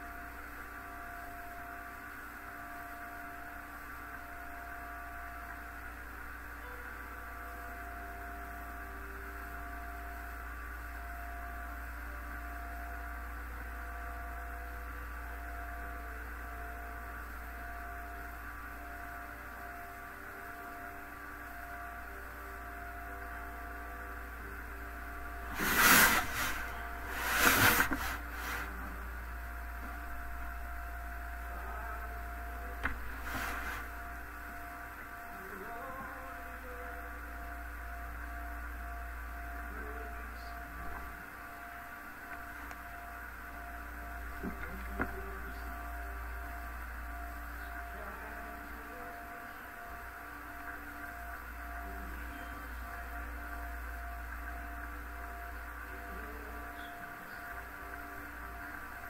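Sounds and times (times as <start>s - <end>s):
electrical hum: 0.0s - 59.0s
faint steady tones: 0.0s - 59.0s.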